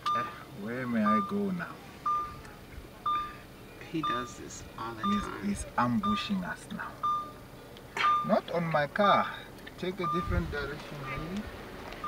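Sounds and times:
short high electronic beeps: 3.1s - 3.4s.

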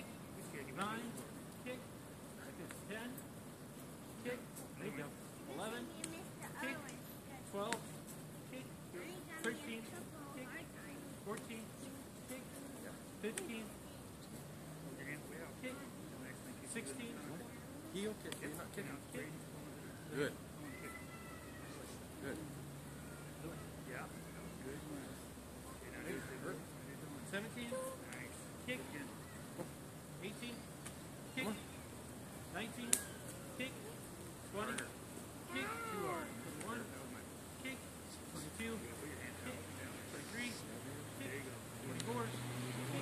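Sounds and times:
faint distant voices: 0.0s - 43.0s
child calling: 20.6s - 22.0s, 22.8s - 24.4s, 29.1s - 29.7s, 35.5s - 36.5s.

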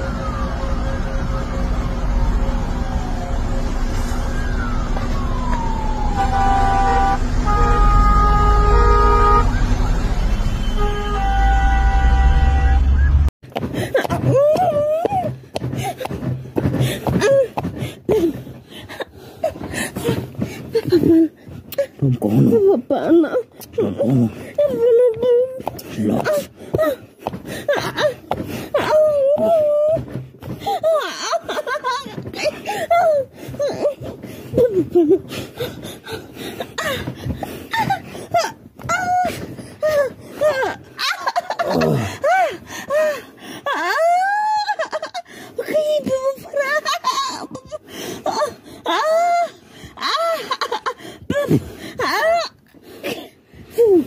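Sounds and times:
heavy traffic rumble: 0.0s - 42.6s
vehicle horns blasting: 6.2s - 13.3s.

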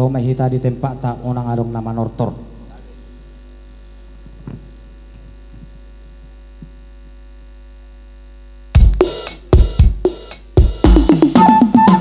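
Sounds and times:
electrical hum from sound system: 0.0s - 12.0s.

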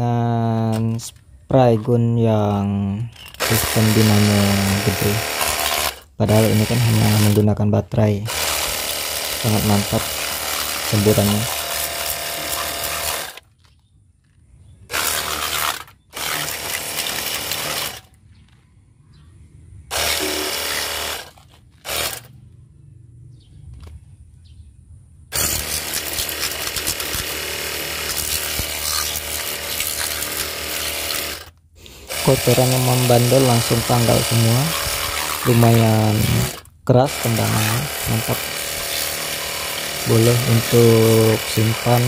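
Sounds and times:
pressure washer motor humming: 3.2s - 7.5s, 8.3s - 13.4s, 14.9s - 18.0s, 19.9s - 22.3s, 25.3s - 42.0s
water jet hissing on metal: 32.1s - 36.5s.

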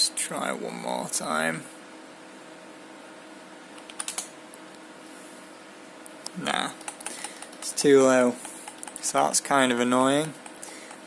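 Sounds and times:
computer fans humming: 0.0s - 11.0s
keyboard key clicks: 3.8s - 4.3s, 6.8s - 7.8s, 8.4s - 9.0s.

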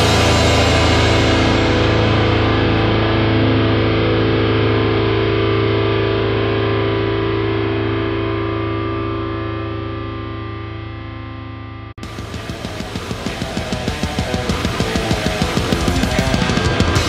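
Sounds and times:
distorted electric guitar chord: 0.0s - 17.0s.

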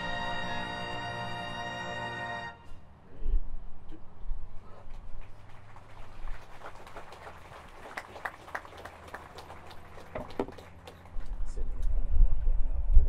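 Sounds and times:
wind rumbling on microphone: 11.1s - 13.0s.

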